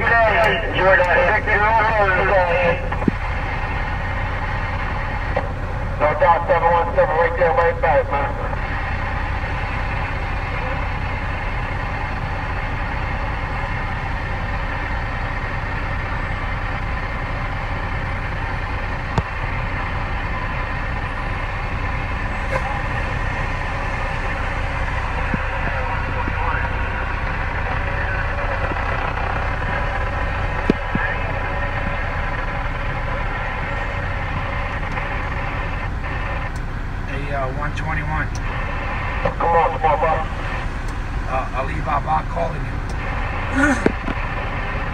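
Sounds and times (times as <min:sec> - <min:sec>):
faint radio chatter: 0:00.0 - 0:03.3, 0:05.4 - 0:08.8, 0:22.4 - 0:33.4, 0:37.1 - 0:40.7
radio static hiss: 0:00.0 - 0:03.8, 0:05.3 - 0:09.0, 0:22.1 - 0:33.3, 0:34.4 - 0:36.5, 0:38.0 - 0:44.9
truck engine idling: 0:00.0 - 0:44.9.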